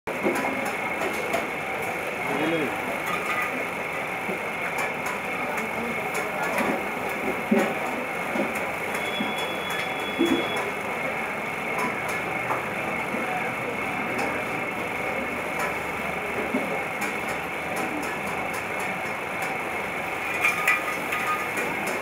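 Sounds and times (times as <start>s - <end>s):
potter's wheel turning: 0.4s - 22.0s
faint voices: 9.3s - 18.5s.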